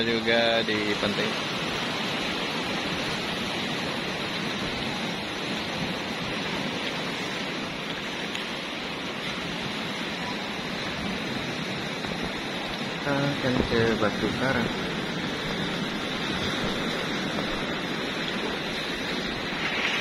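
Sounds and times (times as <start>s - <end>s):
waves washing on rocky beach: 0.0s - 20.0s.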